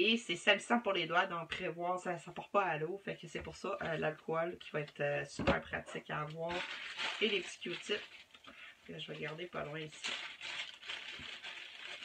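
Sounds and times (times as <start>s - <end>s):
paper crinkling and rustling: 6.5s - 12.0s.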